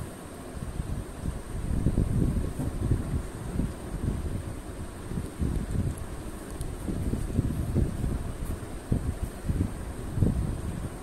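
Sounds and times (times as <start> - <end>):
low uneven rumbling noise: 0.0 - 11.0.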